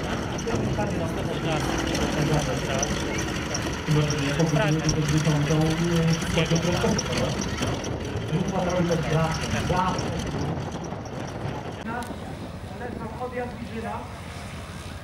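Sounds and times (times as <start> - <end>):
radial aircraft engine running: 0.0 - 15.0.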